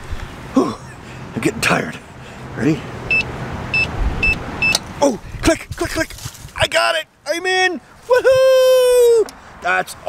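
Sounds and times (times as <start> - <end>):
keypad beeping: 3.1 - 4.8.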